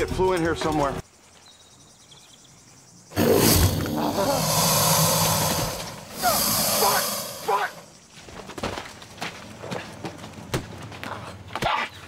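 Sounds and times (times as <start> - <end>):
alligator hissing: 3.1 - 8.0.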